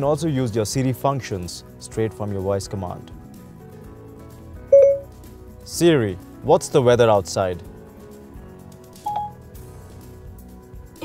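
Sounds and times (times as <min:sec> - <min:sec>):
soft background music: 0:00.0 - 0:11.0
short electronic beep: 0:04.7 - 0:05.1, 0:09.1 - 0:09.4.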